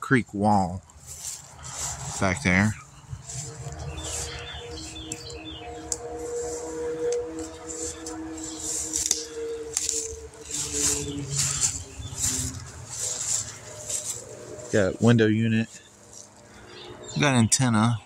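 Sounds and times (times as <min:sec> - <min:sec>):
birds chirping: 0:00.4 - 0:18.0
steady hum: 0:00.6 - 0:17.8
footsteps through grass: 0:00.8 - 0:17.2.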